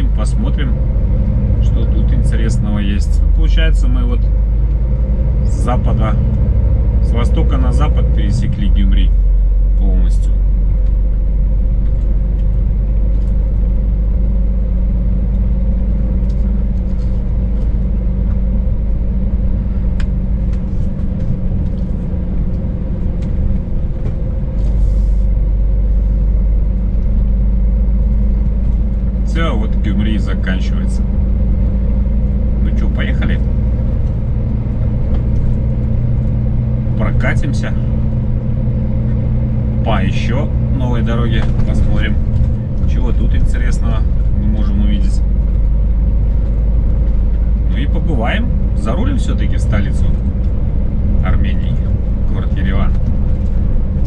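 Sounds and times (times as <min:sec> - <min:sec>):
truck diesel engine droning: 0:00.0 - 0:54.0.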